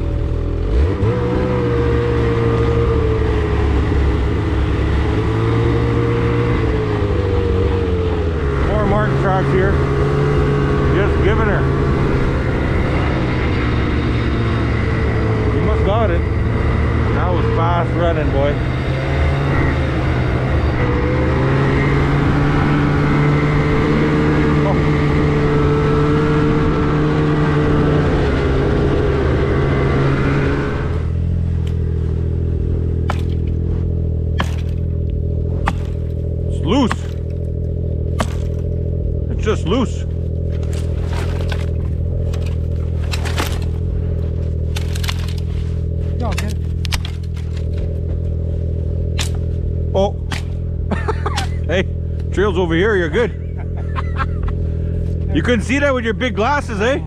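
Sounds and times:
snowmobile engine running: 0.0 - 57.0
sharp clicks and knocks: 46.3 - 47.9.

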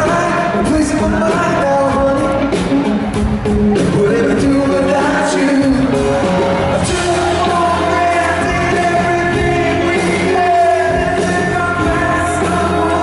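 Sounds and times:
man singing into microphone: 0.0 - 2.5, 3.8 - 13.0
drums: 0.0 - 13.0
electric guitar: 0.0 - 13.0.

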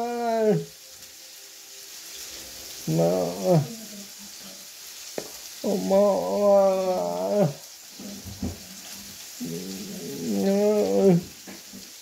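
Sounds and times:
man's drawn-out wordless vocal: 2.8 - 3.9, 5.6 - 7.6, 9.4 - 11.4.

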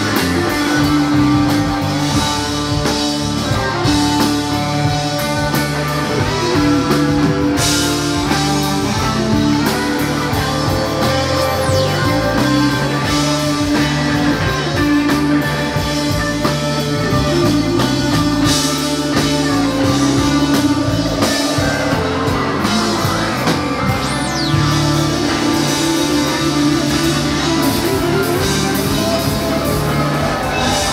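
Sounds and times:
bass line: 0.0 - 30.9
drum kit with cymbals: 0.0 - 30.9
electric guitars: 0.0 - 30.9.

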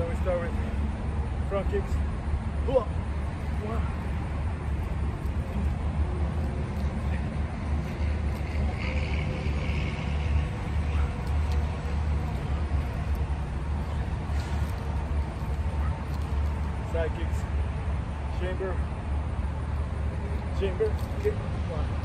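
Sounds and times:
highway traffic rumble: 0.0 - 22.0.

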